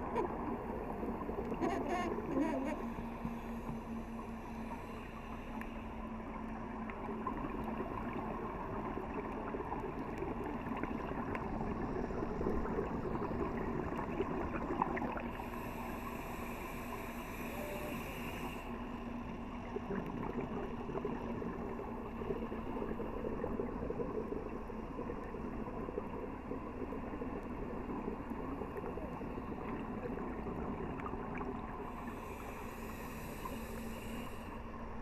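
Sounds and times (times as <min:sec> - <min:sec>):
underwater regulator bubbling: 0:01.4 - 0:02.9
regulator hiss: 0:15.4 - 0:18.7.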